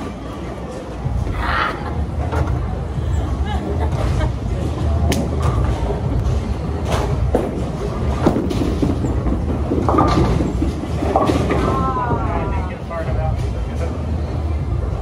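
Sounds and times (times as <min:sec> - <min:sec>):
bowling balls rolling: 0:03.7 - 0:14.0.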